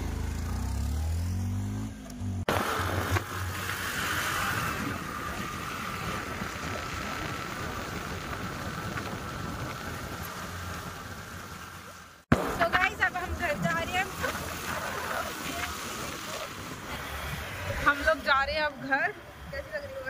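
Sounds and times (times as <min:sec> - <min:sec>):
scooter engine revving: 0:00.0 - 0:11.4
road noise: 0:00.0 - 0:20.0
wind on microphone: 0:02.6 - 0:11.4.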